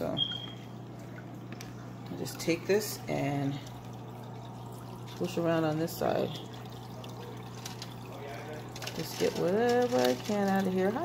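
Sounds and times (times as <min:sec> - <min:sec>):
aquarium water sloshing: 0:00.0 - 0:11.0
steady low hum: 0:00.0 - 0:11.0.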